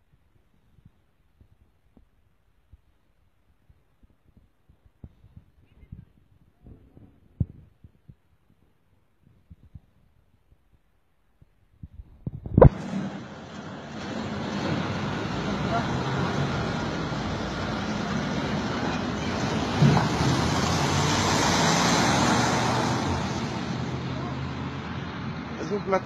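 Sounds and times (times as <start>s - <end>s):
road traffic noise: 12.6s - 26.0s
vehicle passing: 12.7s - 26.0s.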